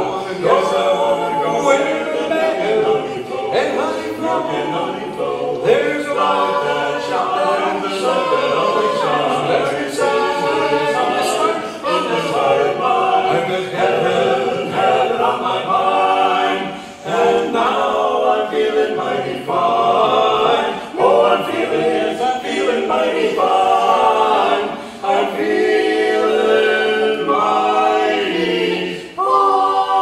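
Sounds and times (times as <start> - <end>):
male quartet singing a cappella: 0.0 - 30.0.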